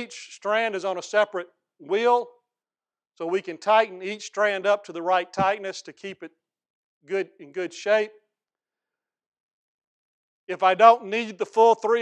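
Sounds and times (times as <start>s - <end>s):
man speaking: 0.0s - 2.4s, 3.2s - 6.4s, 7.1s - 8.3s, 10.5s - 12.0s.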